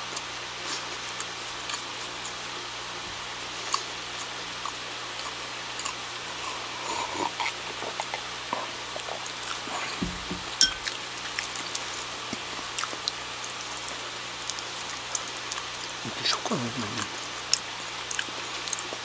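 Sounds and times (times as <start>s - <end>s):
swallowing: 5.2s - 10.2s
knock: 10.0s - 10.5s.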